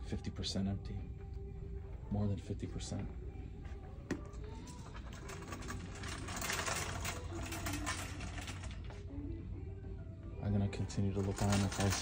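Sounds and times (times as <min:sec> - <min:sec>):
shopping cart rattling on hard floor: 0:05.1 - 0:08.8, 0:11.2 - 0:12.0.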